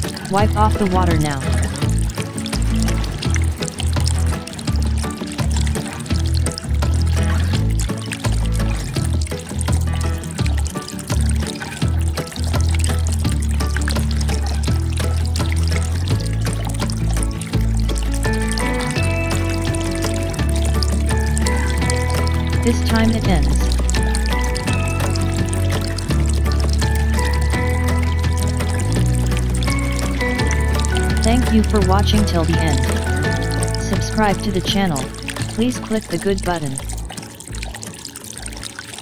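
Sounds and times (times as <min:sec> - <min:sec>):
pulsing bass line: 0:00.3 - 0:02.1, 0:22.4 - 0:23.9, 0:31.2 - 0:36.9.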